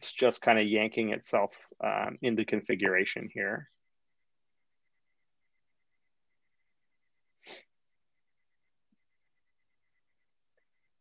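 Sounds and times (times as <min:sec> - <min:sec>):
sharp breath burst: 0:07.4 - 0:07.7.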